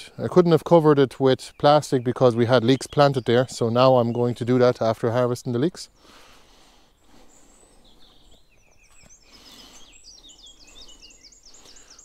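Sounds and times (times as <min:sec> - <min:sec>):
songbirds singing: 0:00.0 - 0:12.0.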